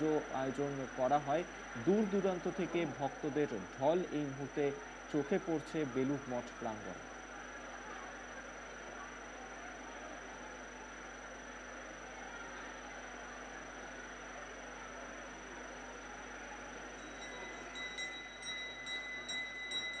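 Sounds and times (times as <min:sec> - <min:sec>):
hand bell ringing: 0:17.0 - 0:20.0.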